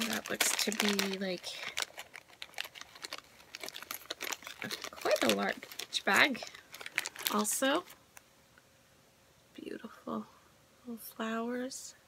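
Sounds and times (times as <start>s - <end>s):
plastic bag crinkling: 0.0s - 8.0s.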